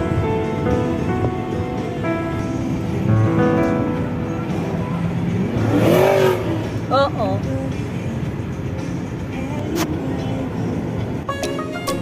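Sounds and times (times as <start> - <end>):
background music: 0.0 - 12.0
car engine and road noise: 0.0 - 12.0.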